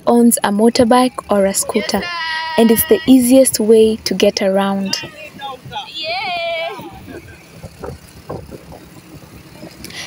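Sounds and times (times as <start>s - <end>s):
motorbike engine: 0.0s - 10.0s
street traffic: 0.0s - 10.0s
high-pitched vocal exclamation: 1.6s - 3.4s, 4.9s - 7.0s.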